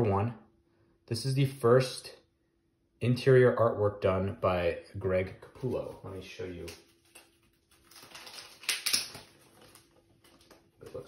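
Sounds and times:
sharp plastic crackles: 6.6s - 11.0s
plastic bag rustling: 6.9s - 11.0s.

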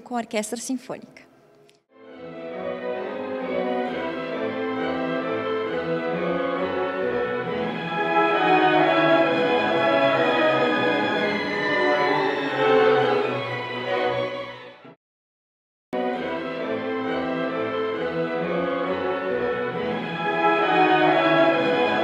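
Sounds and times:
symphony orchestra playing: 2.0s - 14.9s, 16.0s - 22.0s.

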